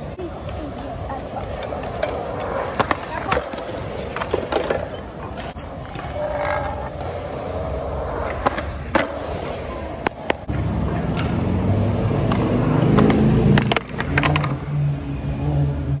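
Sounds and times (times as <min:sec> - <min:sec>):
skateboard wheels rolling on concrete: 0:00.0 - 0:16.0
skateboard clacking on concrete: 0:00.3 - 0:11.4, 0:12.2 - 0:14.6.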